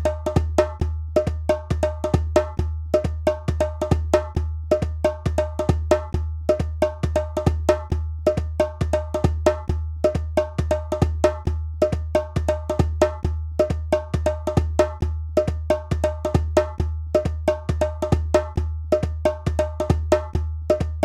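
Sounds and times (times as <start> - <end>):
hand drum strikes: 0.0 - 21.0.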